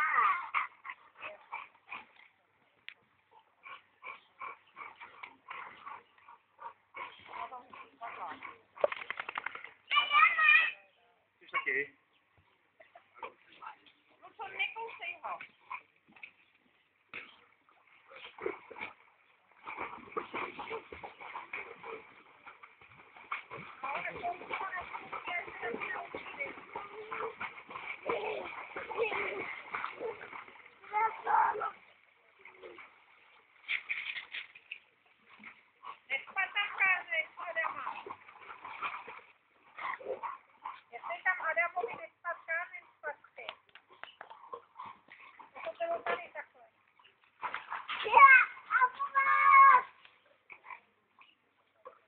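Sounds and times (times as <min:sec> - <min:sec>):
water splashing in pool: 0:00.0 - 0:03.6, 0:04.2 - 0:10.8, 0:13.2 - 0:52.0.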